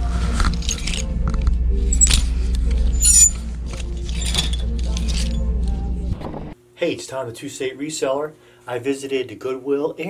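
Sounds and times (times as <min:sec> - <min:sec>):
background music: 0:00.0 - 0:06.6
steady low hum: 0:00.0 - 0:06.7
garments rustling: 0:01.9 - 0:05.4
metal hangers clinking on rack: 0:03.0 - 0:05.4.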